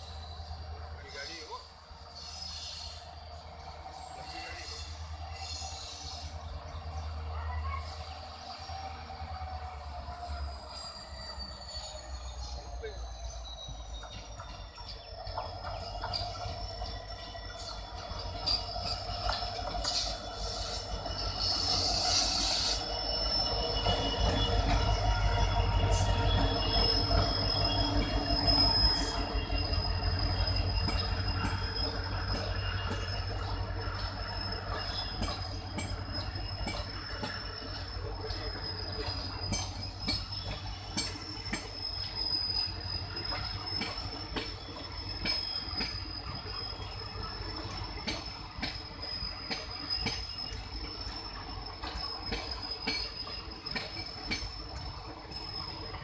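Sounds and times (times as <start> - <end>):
diesel locomotive rumble: 0.0 - 56.0
high wheel squeal: 0.0 - 56.0.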